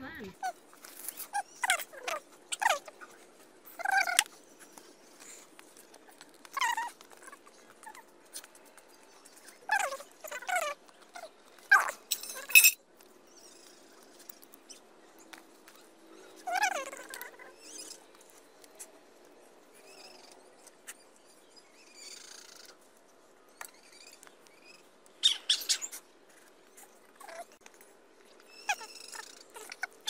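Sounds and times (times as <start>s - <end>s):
small animal yelping: 0.3s - 3.0s, 3.7s - 4.3s, 6.5s - 8.5s, 9.4s - 12.5s, 15.7s - 18.0s, 27.2s - 27.6s, 28.5s - 30.0s.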